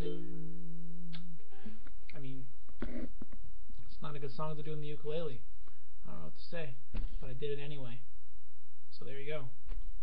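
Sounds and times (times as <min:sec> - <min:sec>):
ukulele chord ringing: 0:00.0 - 0:01.7.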